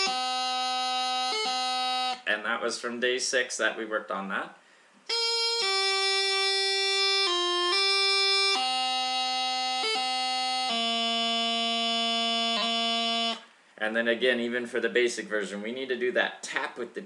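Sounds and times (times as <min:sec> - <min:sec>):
practice chanter playing: 0:00.0 - 0:02.3, 0:05.1 - 0:13.5.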